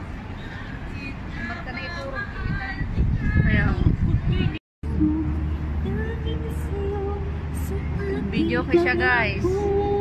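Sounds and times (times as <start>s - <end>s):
steady low rumble: 0.8s - 10.0s.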